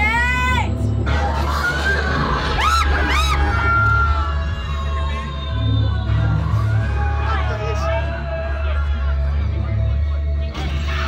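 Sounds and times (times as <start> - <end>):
loud music with deep bass: 0.0 - 11.0.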